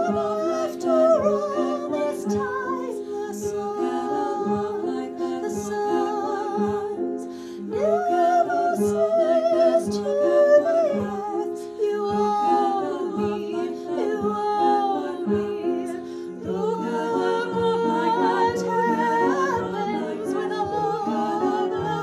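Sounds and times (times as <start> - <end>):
women singing held chords: 0.0 - 22.0.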